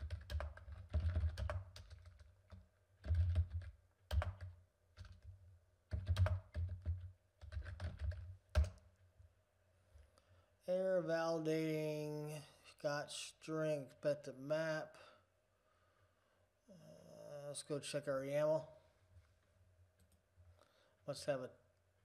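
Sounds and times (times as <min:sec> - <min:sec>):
computer keyboard typing: 0:00.0 - 0:05.3, 0:05.9 - 0:08.8.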